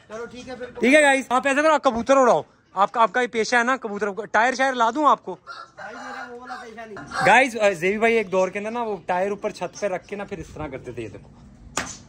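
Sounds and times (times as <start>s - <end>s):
rooster crowing: 5.5s - 7.5s.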